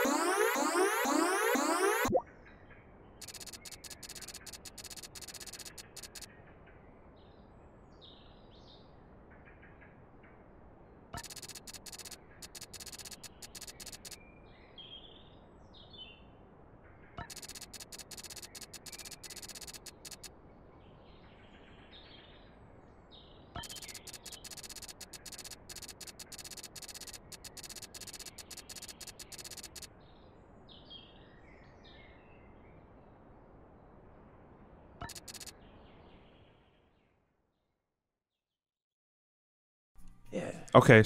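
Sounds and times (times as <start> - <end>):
rapid text-scroll blips: 0.0 - 2.2, 3.2 - 6.3, 11.2 - 14.2, 17.2 - 20.3, 23.6 - 29.9, 35.0 - 35.5
faint bird chirps: 0.0 - 6.8, 11.2 - 16.3, 17.0 - 22.5, 23.2 - 32.9, 35.0 - 37.0.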